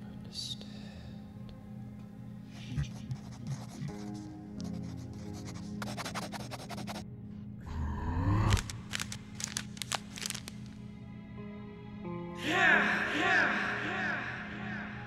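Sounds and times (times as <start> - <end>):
low ambient music drone: 0.0 - 15.0
pencil scratching on paper: 2.6 - 7.0.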